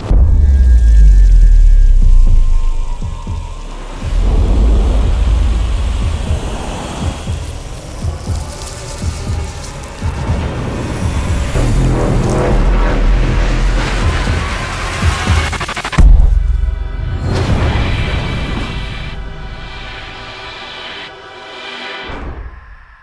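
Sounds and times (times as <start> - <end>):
soundtrack music with deep bass: 0.0 - 23.0.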